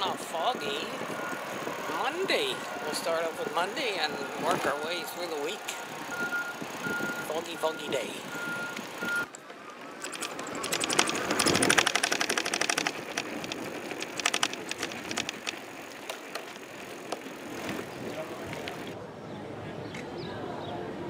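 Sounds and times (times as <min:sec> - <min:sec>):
scattered clicks: 0:08.7 - 0:17.3
fast run of clacks: 0:10.0 - 0:19.0.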